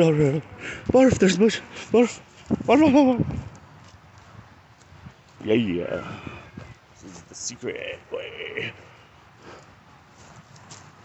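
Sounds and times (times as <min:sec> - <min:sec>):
faint footsteps: 0:00.7 - 0:07.5, 0:08.8 - 0:11.0.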